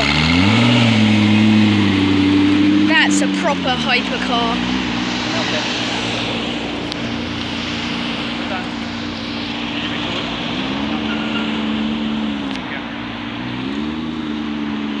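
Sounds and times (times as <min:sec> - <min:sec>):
sports car engine running: 0:00.0 - 0:15.0.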